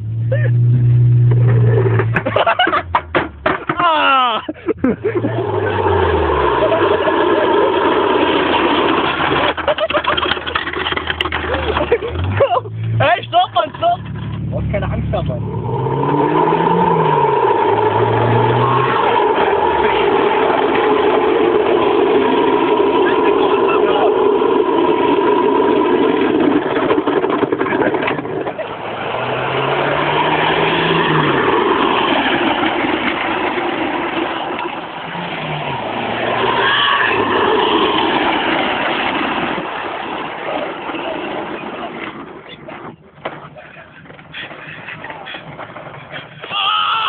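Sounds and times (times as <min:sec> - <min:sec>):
vehicle running noise: 0:00.0 - 0:46.7.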